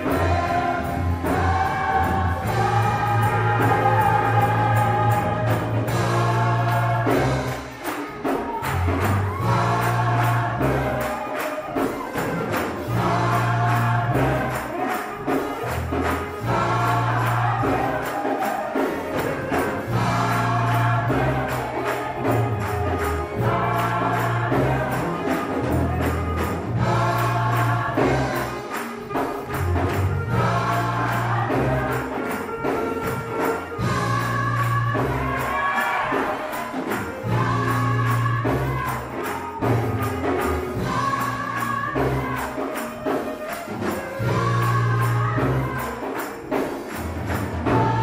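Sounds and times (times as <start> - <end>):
sustained bass notes: 0.0 - 7.7, 19.2 - 28.6
gospel choir singing: 0.0 - 48.0
percussion beat: 0.0 - 48.0.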